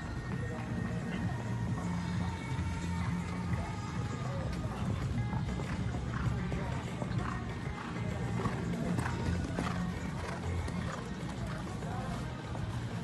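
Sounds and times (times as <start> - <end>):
background music: 0.0 - 13.0
voices: 0.0 - 13.0
horse hoofbeats on sand: 0.2 - 13.0.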